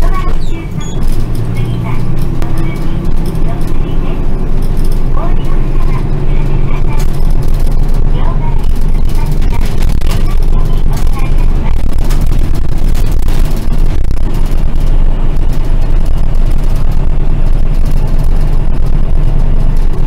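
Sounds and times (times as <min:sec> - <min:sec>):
bus engine humming: 0:00.0 - 0:20.0
road noise: 0:00.0 - 0:20.0.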